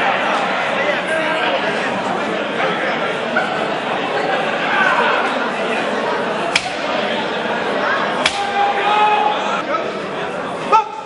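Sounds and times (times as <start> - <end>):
crowd voices and calls: 0.0 - 11.0
sharp crack: 6.5 - 7.0, 8.2 - 8.6.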